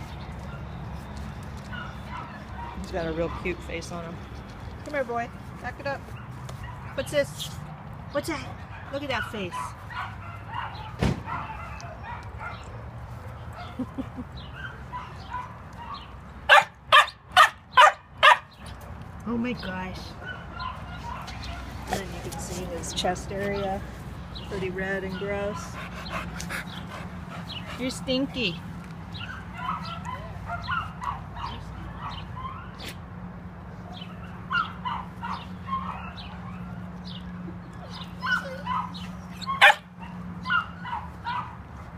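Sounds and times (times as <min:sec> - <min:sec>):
dog barking: 0:01.7 - 0:03.5, 0:08.7 - 0:12.7, 0:14.6 - 0:18.5, 0:29.2 - 0:32.8, 0:33.9 - 0:36.8, 0:38.2 - 0:41.6
sharp thump: 0:11.0 - 0:11.3.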